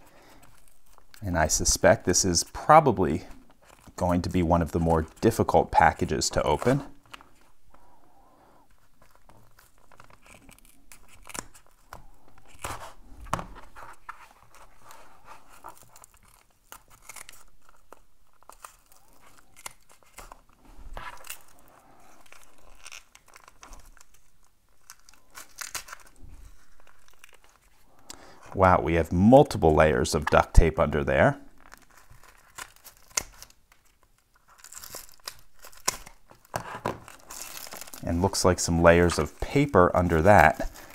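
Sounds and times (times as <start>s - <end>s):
tape tearing and crinkling: 0.0s - 7.6s, 8.7s - 27.9s, 31.5s - 40.9s.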